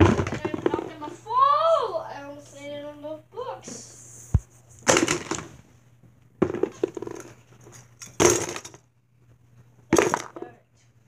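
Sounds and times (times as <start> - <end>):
phone bumping against toys: 6.4 - 7.4.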